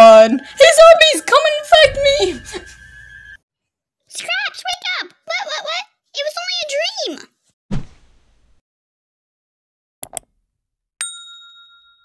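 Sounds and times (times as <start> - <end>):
bright bell ding: 11.0 - 12.0.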